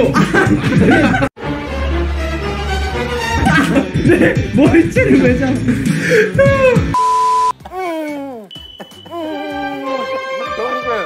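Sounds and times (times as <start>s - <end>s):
electronic beep with static: 7.0s - 7.5s
voice moaning: 7.6s - 8.5s, 9.1s - 10.2s.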